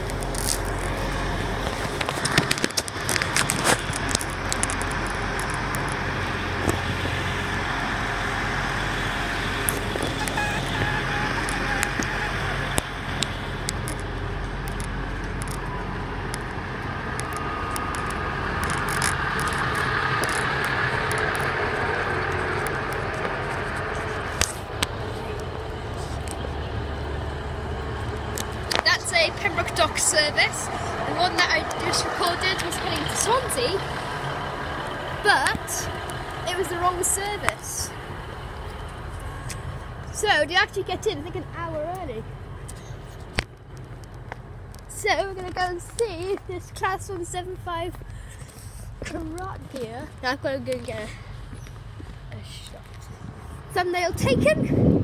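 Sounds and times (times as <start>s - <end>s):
train engine drone: 0.0s - 55.0s.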